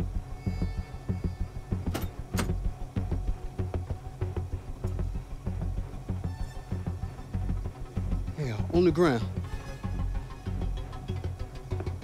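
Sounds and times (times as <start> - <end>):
tense film score with pulsing beat: 0.0 - 12.0
car door latch clicks: 1.9 - 2.6.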